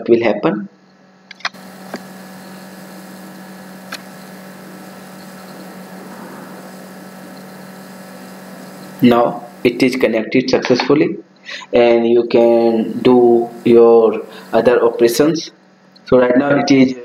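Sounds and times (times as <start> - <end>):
low electrical hum: 0.0 - 17.0
background hiss: 1.4 - 10.1, 11.4 - 15.6.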